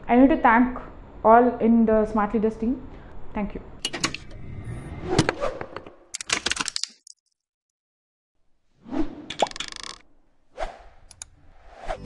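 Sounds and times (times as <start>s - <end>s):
whoosh: 4.3s - 5.7s.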